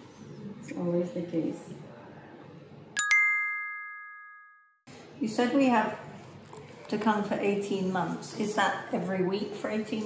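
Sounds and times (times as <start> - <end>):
bright bell-like chime: 3.0 - 4.8.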